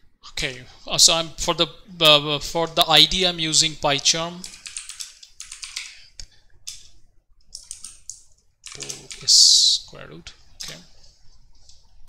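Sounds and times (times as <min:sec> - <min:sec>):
computer keyboard clicks: 0:04.4 - 0:06.0, 0:06.7 - 0:09.3.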